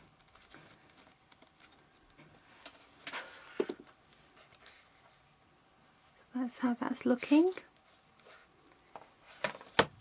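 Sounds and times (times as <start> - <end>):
rustling and tapping of paper: 0.0 - 5.1, 7.7 - 10.0.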